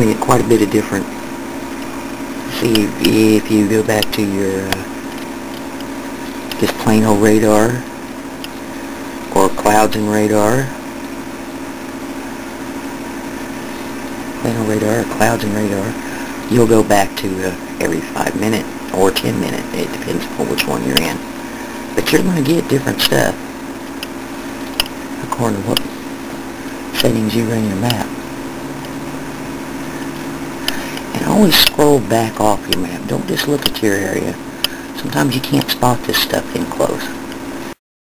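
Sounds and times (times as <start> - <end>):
machine hum: 0.0 - 37.8.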